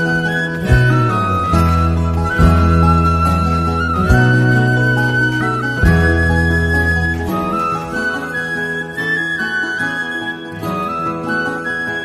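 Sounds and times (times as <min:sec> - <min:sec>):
instrumental folk music: 0:00.0 - 0:12.0.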